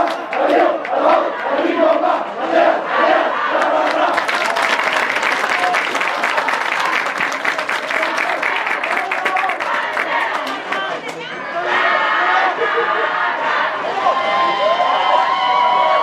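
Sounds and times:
team shouting a rhythmic chant: 0:00.0 - 0:04.5, 0:07.8 - 0:14.6
crowd shouting and cheering: 0:00.0 - 0:16.0.

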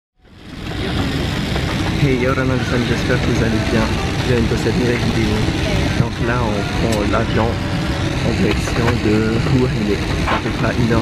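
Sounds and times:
airliner cabin engine drone: 0:00.2 - 0:11.0.

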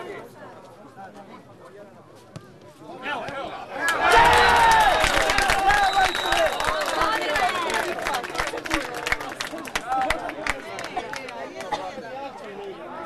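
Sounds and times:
people shouting and cheering: 0:03.7 - 0:10.7.

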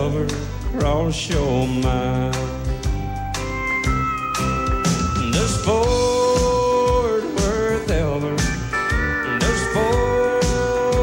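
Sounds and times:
sliding guitar notes: 0:00.0 - 0:11.0.

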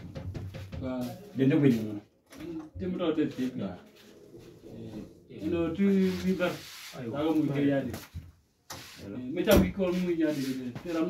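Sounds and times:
man talking in a low voice: 0:00.7 - 0:02.1, 0:02.7 - 0:03.9, 0:04.6 - 0:08.2, 0:09.0 - 0:11.0.

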